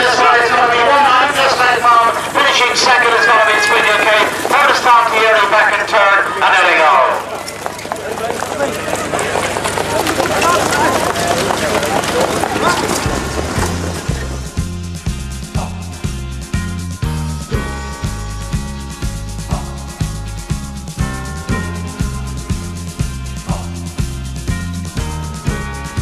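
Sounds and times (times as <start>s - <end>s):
loud excited shouting: 0.0s - 13.6s
background noise: 0.0s - 14.8s
music with a steady beat: 13.1s - 26.0s.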